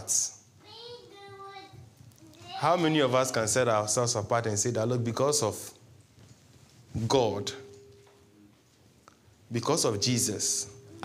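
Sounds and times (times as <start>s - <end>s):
preacher speaking: 2.5s - 5.8s, 9.5s - 10.8s.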